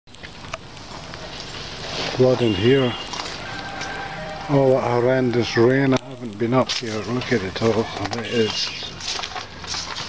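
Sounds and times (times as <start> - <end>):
rain falling: 0.1 - 10.0
raindrops ticking: 0.1 - 10.0.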